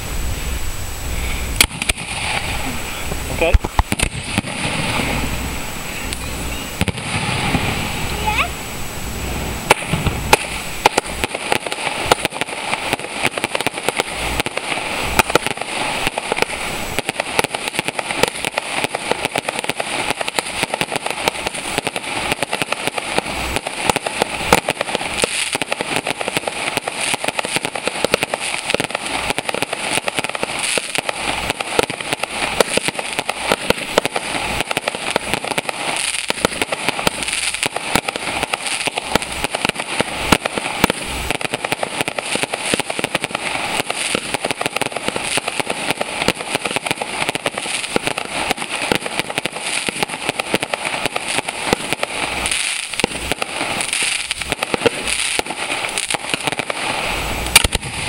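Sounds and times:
fireworks bangs: 0.0 - 58.0
fireworks crackling and popping: 0.0 - 58.0.

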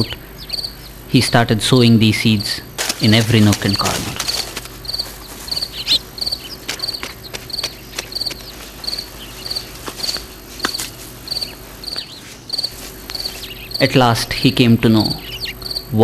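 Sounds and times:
insect chirping: 0.0 - 16.0.

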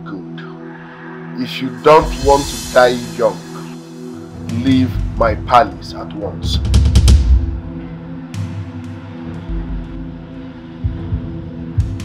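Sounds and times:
low music drone: 0.0 - 12.0
deep drum beats: 4.4 - 7.8, 10.8 - 12.0.

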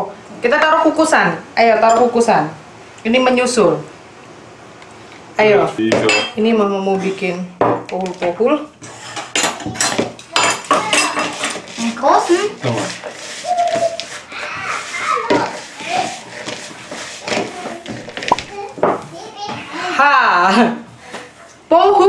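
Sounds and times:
kitchenware clinking and knocking: 5.9 - 6.4, 9.1 - 11.6.

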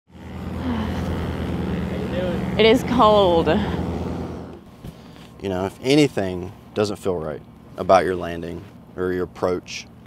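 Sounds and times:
small aircraft engine drone: 0.1 - 10.0.

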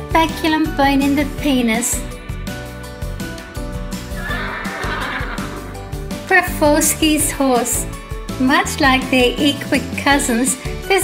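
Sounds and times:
background music: 0.0 - 11.0
horse whinnying: 4.1 - 6.0.

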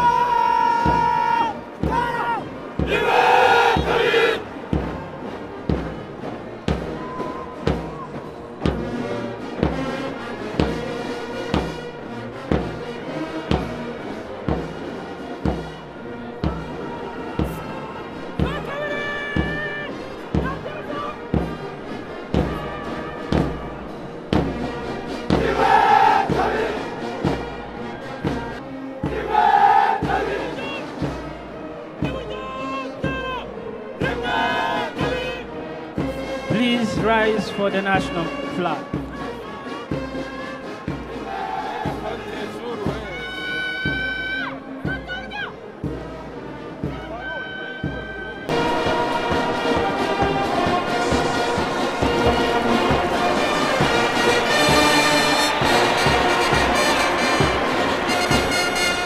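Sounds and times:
shouted calls: 0.0 - 4.5, 41.1 - 45.6, 47.0 - 59.0
soldiers chanting in unison: 0.0 - 5.0, 12.6 - 45.0, 46.8 - 59.0
marching beat: 0.0 - 59.0.

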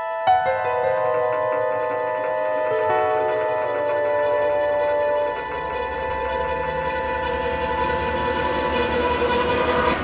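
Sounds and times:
thriller film score sustained chord: 0.0 - 10.0.

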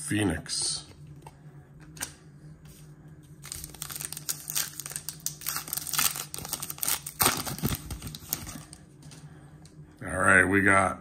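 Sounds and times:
wrapper tearing and crinkling: 3.4 - 8.8.

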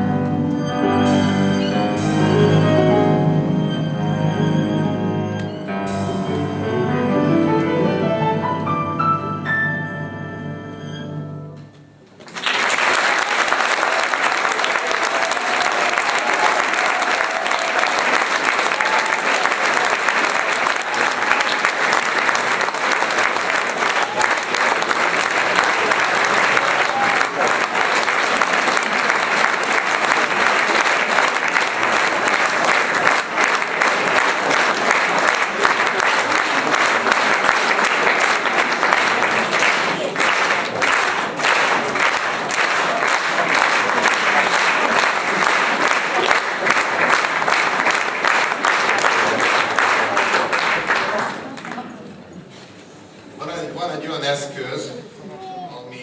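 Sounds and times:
audience clapping: 12.1 - 52.7.

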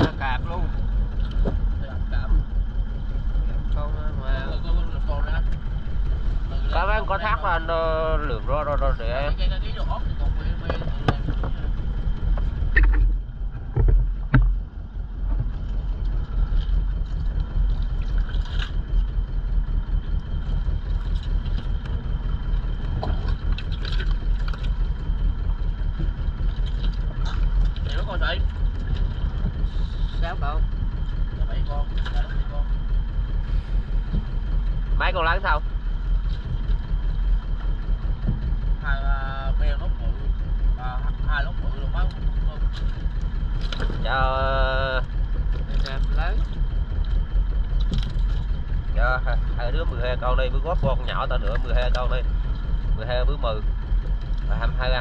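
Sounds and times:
boat engine running: 0.0 - 55.0.

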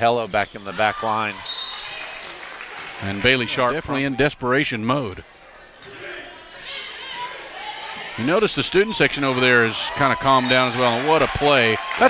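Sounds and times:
distant shouts and voices: 5.4 - 12.0.

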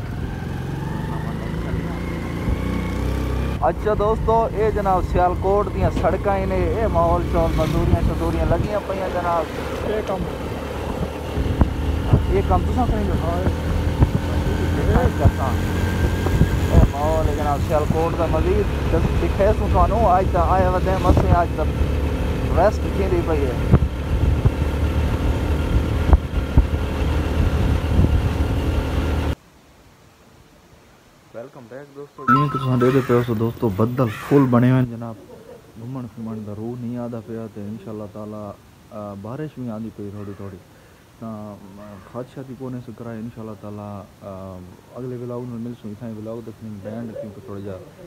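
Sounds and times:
small engine rumbling: 0.0 - 29.4
person talking: 3.6 - 10.8, 14.4 - 15.6, 32.0 - 38.4.

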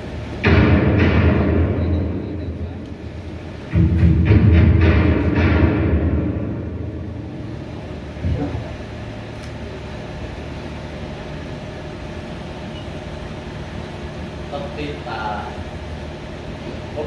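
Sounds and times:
low hum of room noise: 0.0 - 17.0.

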